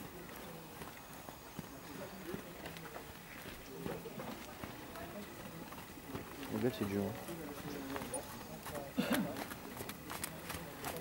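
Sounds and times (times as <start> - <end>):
faint voices murmuring: 0.0 - 11.0
horse trotting on sand: 0.0 - 11.0.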